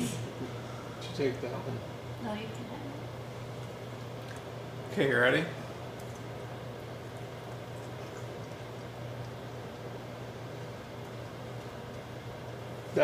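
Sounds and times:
low room hum with hiss: 0:00.0 - 0:13.0.

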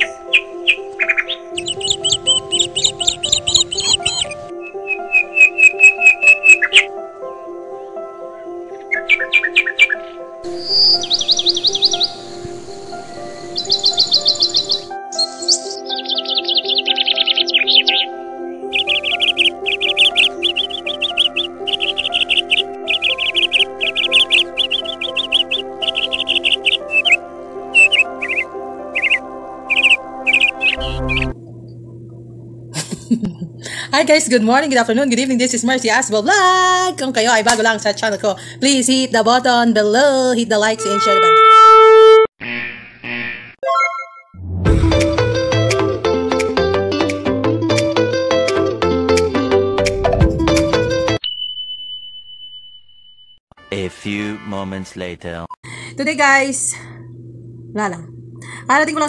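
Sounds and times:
birds chirping and trilling: 0:00.0 - 0:31.4
soft sustained chords: 0:09.7 - 0:17.3.

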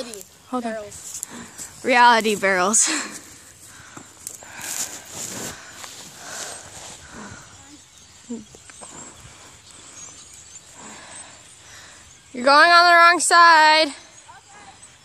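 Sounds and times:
scuffing on dry dirt: 0:04.4 - 0:07.0.

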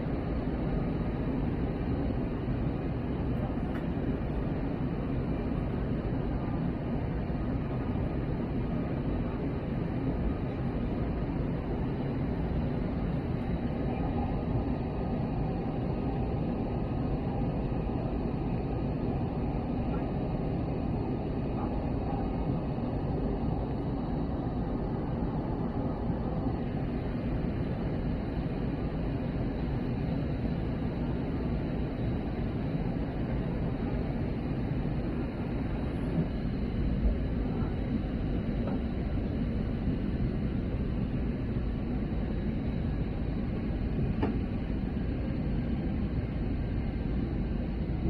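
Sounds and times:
aircraft cabin rumble: 0:00.0 - 0:48.0
faint high steady whine: 0:00.0 - 0:48.0.

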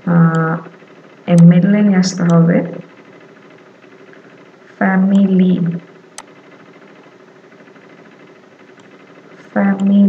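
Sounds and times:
microphone hum and hiss: 0:00.0 - 0:10.0.

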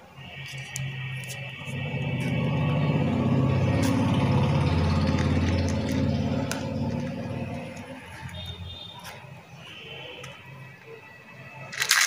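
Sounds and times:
low engine rumble: 0:01.4 - 0:10.4.

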